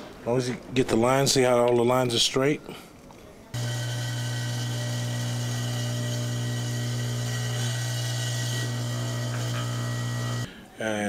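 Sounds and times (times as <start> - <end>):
small power tool motor whirring: 3.6 - 10.5.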